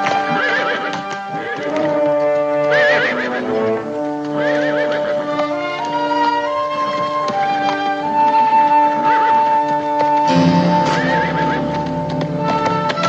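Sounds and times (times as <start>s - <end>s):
hoofbeats on dirt road: 0.0s - 13.0s
horse whinnying: 0.0s - 13.0s
orchestral music: 0.0s - 13.0s.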